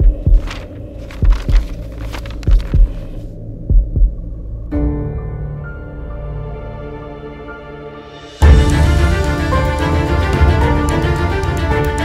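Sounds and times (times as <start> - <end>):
heartbeat double thump: 0.0 - 0.6, 2.4 - 3.0, 3.6 - 4.2
sustained music chord: 4.8 - 12.0.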